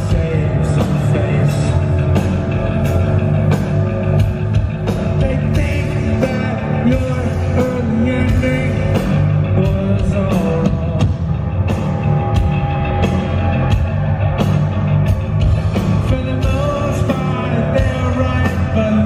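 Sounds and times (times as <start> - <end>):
man singing: 0.0 - 2.2, 5.0 - 11.2, 15.8 - 19.0
live rock band playing: 0.0 - 19.0.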